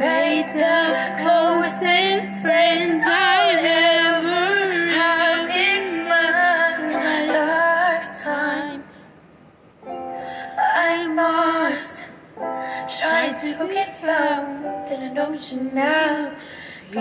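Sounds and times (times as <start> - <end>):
woman singing with vibrato: 0.0 - 9.0, 10.4 - 17.0.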